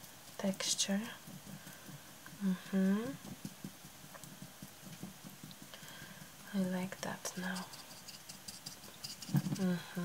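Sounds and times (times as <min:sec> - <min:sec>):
paintbrush dabbing taps: 0:01.2 - 0:09.6.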